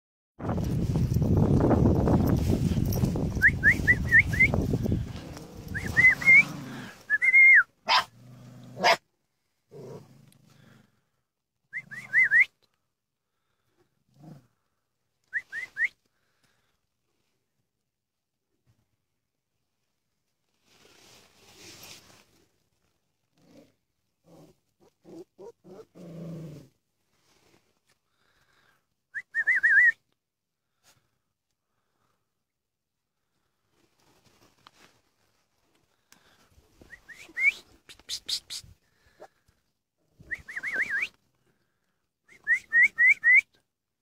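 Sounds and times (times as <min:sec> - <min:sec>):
person whistling: 0:03.4 - 0:04.6, 0:05.7 - 0:07.7, 0:11.8 - 0:12.5, 0:15.4 - 0:16.0, 0:29.2 - 0:30.0, 0:36.9 - 0:38.6, 0:40.3 - 0:41.1, 0:42.3 - 0:43.6.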